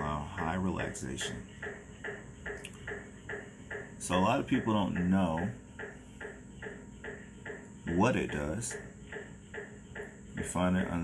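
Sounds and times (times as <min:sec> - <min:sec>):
rhythmic chirping: 0:00.0 - 0:11.0.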